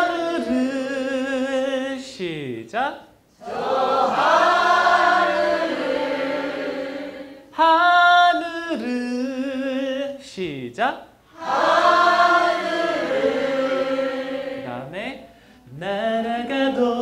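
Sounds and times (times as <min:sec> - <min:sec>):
man singing into a microphone: 0:00.0 - 0:02.9, 0:07.6 - 0:11.0, 0:14.7 - 0:17.0.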